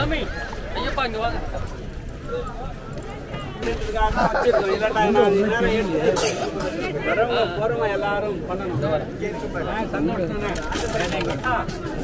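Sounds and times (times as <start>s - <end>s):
men talking over one another: 0.0s - 12.0s.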